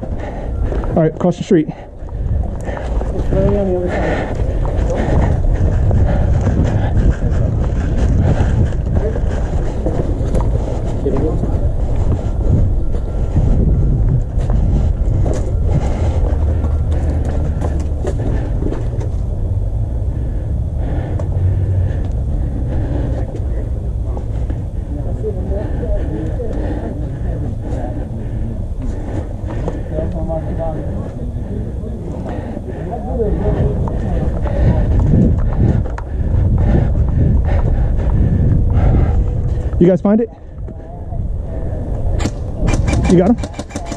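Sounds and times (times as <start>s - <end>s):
faint indistinct voices: 0.0s - 43.9s
wind rumble on microphone: 0.0s - 43.9s.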